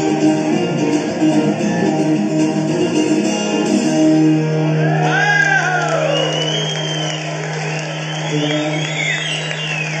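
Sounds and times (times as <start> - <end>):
crowd noise: 0.0 - 10.0
audience whistling: 5.0 - 10.0.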